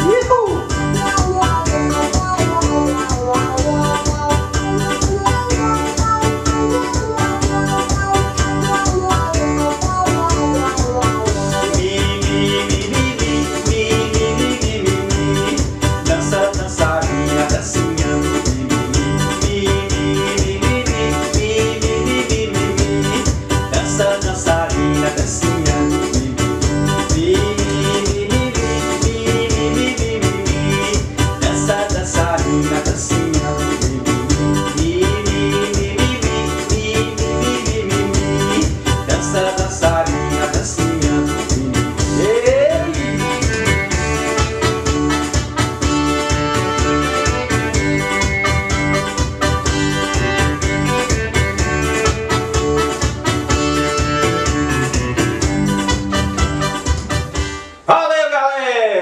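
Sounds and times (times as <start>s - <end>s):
fast programmed beat: 0.0s - 57.5s
electronic keyboard organ melody: 0.0s - 57.9s.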